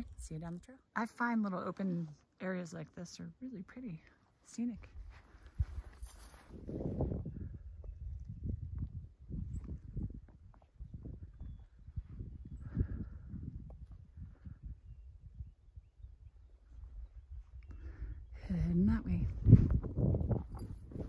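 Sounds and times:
footsteps on dirt trail: 4.8 - 7.2.

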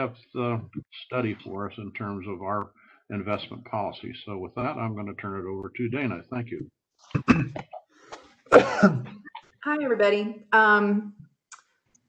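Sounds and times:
person clearing throat coughing: 7.1 - 7.8, 8.5 - 9.3.

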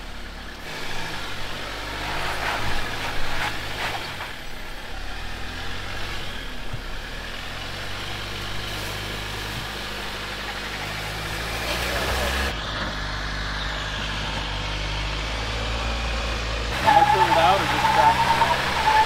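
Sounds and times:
engine running at low revs: 0.0 - 19.0.

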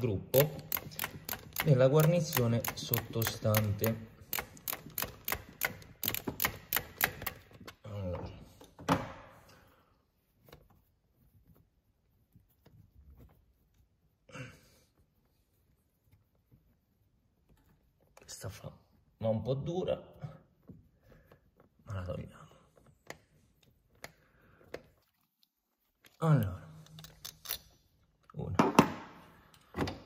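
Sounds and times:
tool and parts clicks and knocks: 0.0 - 7.8, 26.8 - 27.8, 28.5 - 30.0
ratchet wrench clicking: 0.3 - 7.5.

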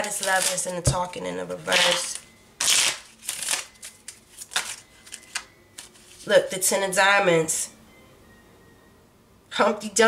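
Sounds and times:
playing cards being shuffled: 1.7 - 6.4.

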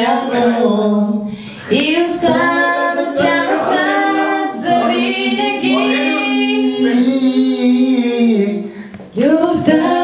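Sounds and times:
person singing pop song: 0.0 - 10.0.

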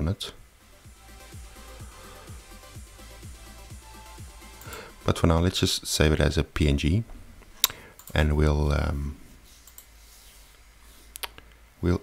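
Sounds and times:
computer mouse clicks: 7.6 - 8.2, 9.6 - 9.9.

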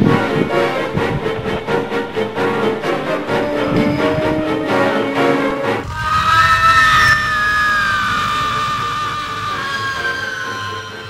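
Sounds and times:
shrill horror screech: 5.6 - 11.0.

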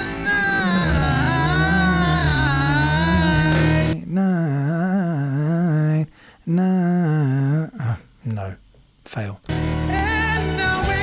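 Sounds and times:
man singing wordless vocal run: 0.0 - 8.1, 9.8 - 11.0.

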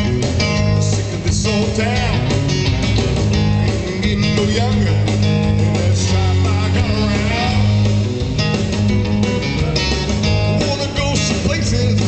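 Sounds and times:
bass guitar: 0.0 - 12.0
drum kit: 0.0 - 12.0
electric guitar lead with bent notes: 0.0 - 12.0.

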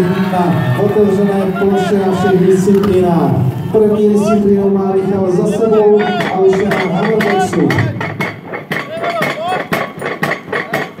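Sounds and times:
rapid hammer blows on metal: 5.7 - 11.0.

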